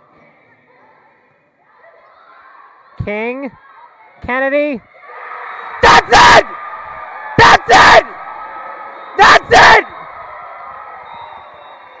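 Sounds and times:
crowd noise in a gym: 0.0s - 12.0s
announcer shouting: 5.8s - 6.6s, 7.4s - 8.2s, 9.2s - 9.9s.

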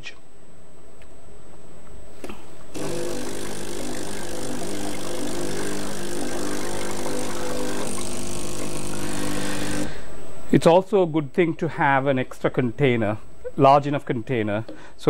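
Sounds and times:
coffee machine pump buzzing: 2.7s - 10.1s.

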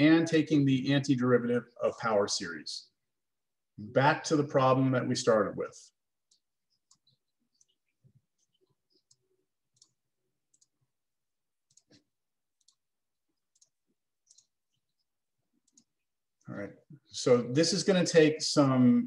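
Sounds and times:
computer mouse clicks: 6.3s - 10.8s, 11.6s - 12.8s, 13.5s - 15.9s.

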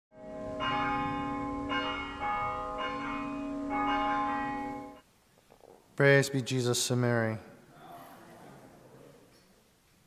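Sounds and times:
church bells ringing: 0.2s - 5.0s.

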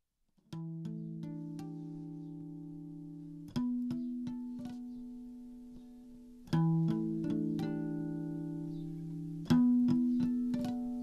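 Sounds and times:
plucked guitar notes: 0.5s - 11.0s.

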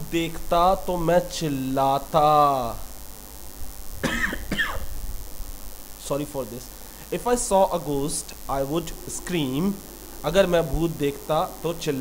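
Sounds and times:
man clearing his throat: 4.0s - 4.9s
low background rumble: 6.7s - 12.0s.

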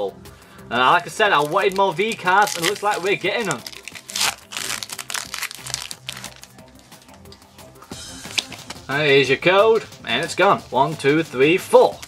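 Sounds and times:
background music: 0.0s - 12.0s
foil wrapper crinkling and tearing: 0.9s - 7.3s
cards sliding out: 8.2s - 8.8s.

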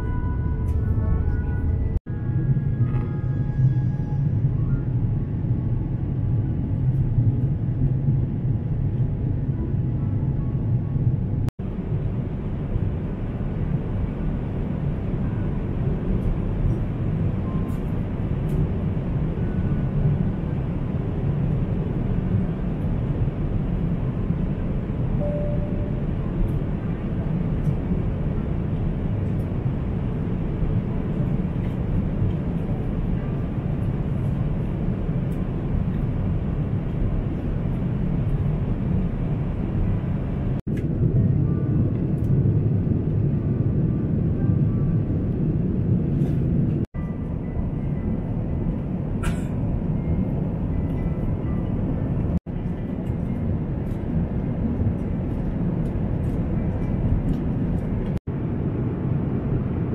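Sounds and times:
airliner cabin roar: 0.0s - 59.9s.

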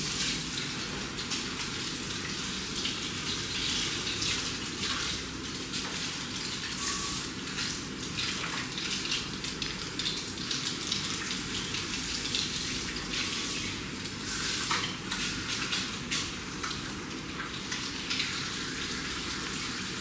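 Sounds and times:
shower head spraying water on hair: 0.0s - 9.3s, 11.9s - 16.8s.

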